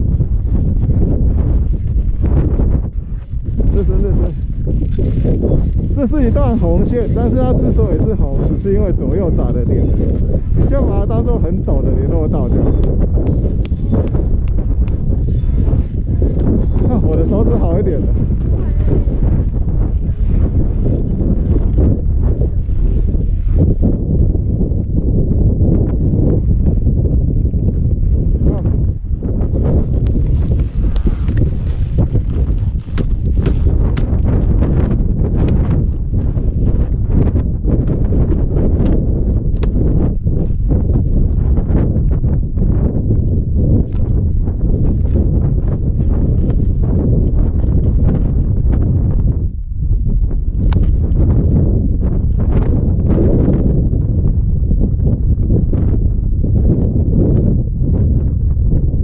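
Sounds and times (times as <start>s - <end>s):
wind buffeting microphone: 0.0s - 59.0s
skis and poles clicking on snow: 3.2s - 10.7s, 29.6s - 34.5s.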